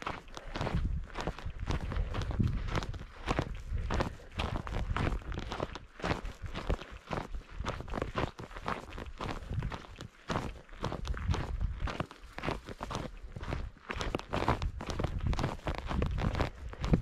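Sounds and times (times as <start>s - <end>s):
footsteps on gravel trail: 0.0s - 17.0s.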